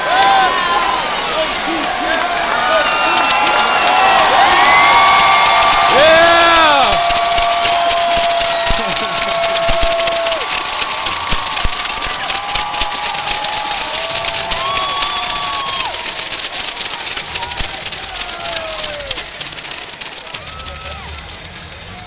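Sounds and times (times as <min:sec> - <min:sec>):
crowd cheering and yelling: 0:00.0 - 0:22.0
crowd clapping: 0:00.0 - 0:22.0.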